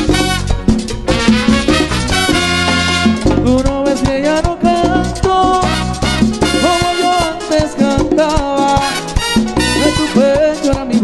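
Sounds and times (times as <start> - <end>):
bass: 0.0 - 11.0
percussion beat with shaker: 0.0 - 11.0.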